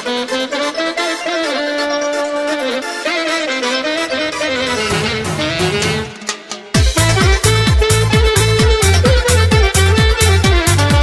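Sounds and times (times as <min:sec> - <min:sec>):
lead melody over beat: 0:00.0 - 0:11.0.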